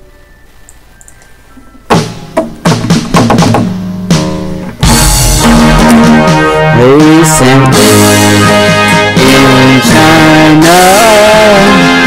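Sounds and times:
acoustic guitar strumming: 1.9 - 12.0.

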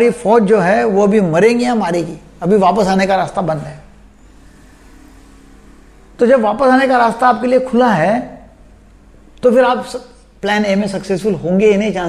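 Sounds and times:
faint low background hum: 0.0 - 12.0.

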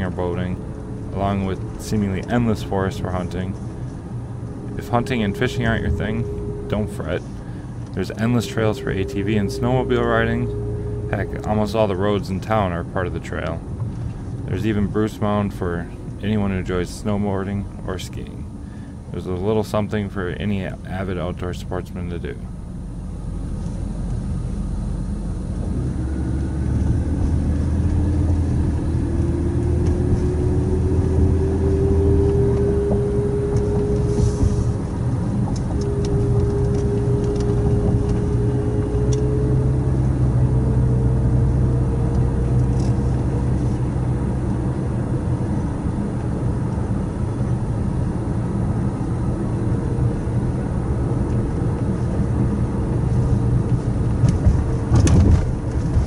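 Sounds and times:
car engine and tyre rumble: 0.0 - 56.0
faint rising whine: 0.0 - 56.0.

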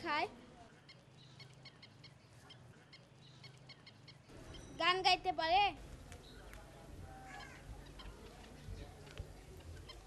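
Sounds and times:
budgerigars chirping: 0.8 - 4.8, 9.4 - 10.0.

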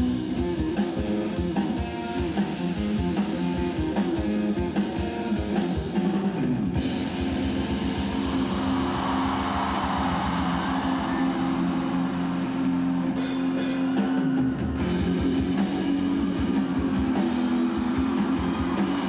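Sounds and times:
electric guitar picking: 0.0 - 8.8
drums: 0.0 - 19.0
live rock band playing: 0.0 - 19.0.

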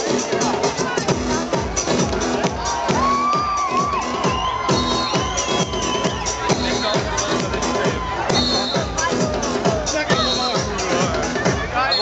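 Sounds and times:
trance dance music over pa: 0.0 - 12.0
crowd cheering: 0.8 - 12.0
kick drum: 1.1 - 11.7.

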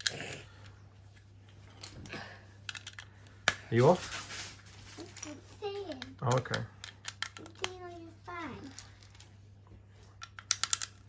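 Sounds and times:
plastic toy bricks clicking: 5.9 - 7.8, 10.2 - 11.0.

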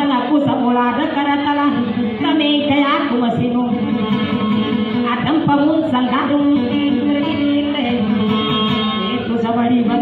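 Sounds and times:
plucked string instrument: 1.7 - 10.0.

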